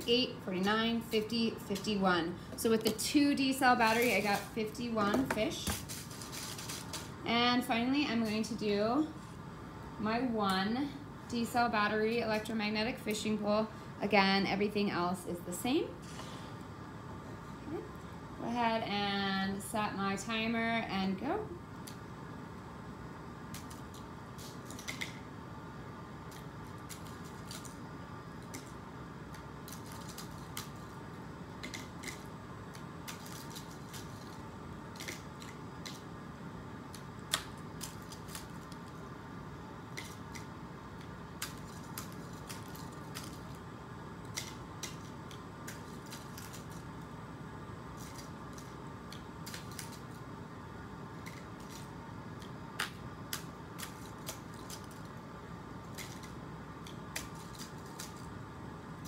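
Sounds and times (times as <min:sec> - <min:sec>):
room hum: 0:00.0 - 0:59.0.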